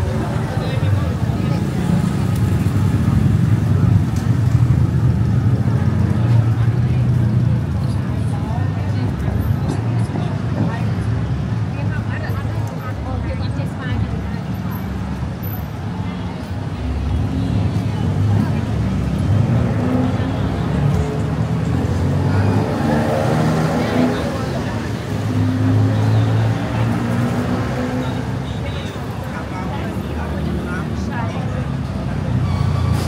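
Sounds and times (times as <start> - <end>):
passers-by talking: 0.0 - 33.0
road traffic: 0.0 - 33.0.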